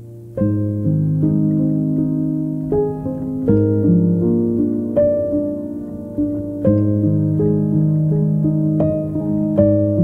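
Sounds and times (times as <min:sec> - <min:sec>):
solo piano melody: 0:00.0 - 0:10.0.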